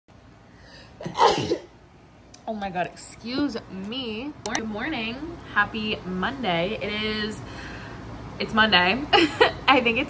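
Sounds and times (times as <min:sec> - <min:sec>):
woman sneezing: 0:01.0 - 0:01.7
faint breath in: 0:07.4 - 0:08.1.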